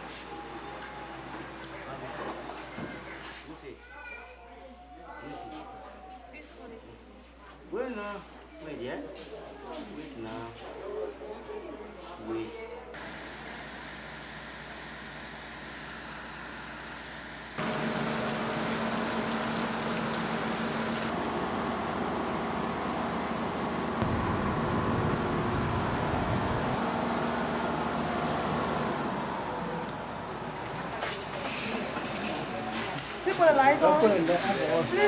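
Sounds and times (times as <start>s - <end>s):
generator running: 13.0s - 33.2s.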